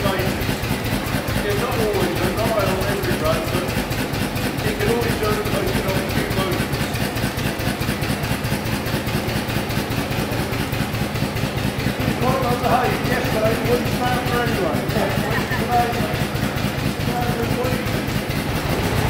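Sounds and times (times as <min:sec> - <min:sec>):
single-cylinder car engine idling: 0:00.0 - 0:19.0.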